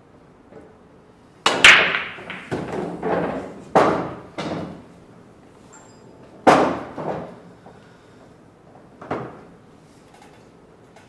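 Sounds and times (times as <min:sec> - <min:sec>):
pool balls clacking: 0:01.4 - 0:04.9, 0:06.4 - 0:07.4
cue striking cue ball: 0:01.5 - 0:04.8.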